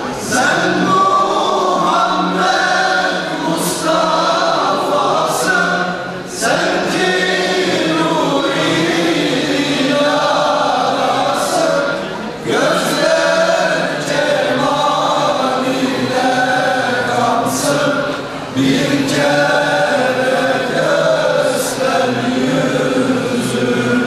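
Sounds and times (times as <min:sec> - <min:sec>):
male choir singing a hymn: 0:00.0 - 0:24.0.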